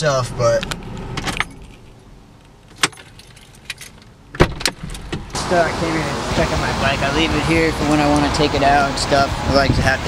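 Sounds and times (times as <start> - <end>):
car keys clicking and jingling: 0.6 - 5.3.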